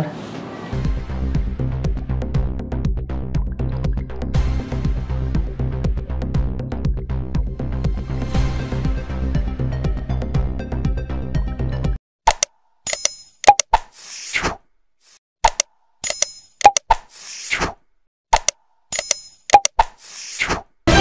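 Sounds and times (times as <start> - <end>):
background music: 0.8 - 12.0
quick clicks: 12.3 - 13.9, 15.4 - 17.7, 18.3 - 20.6
pop sound effect: 13.4 - 13.9, 15.4 - 17.1, 18.3 - 20.0.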